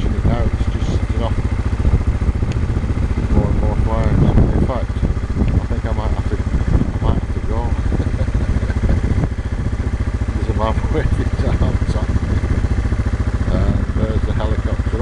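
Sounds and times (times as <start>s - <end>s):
people talking: 0.0s - 1.4s, 3.2s - 9.2s, 10.3s - 12.4s, 13.5s - 15.0s
low pulsing engine hum: 0.0s - 15.0s.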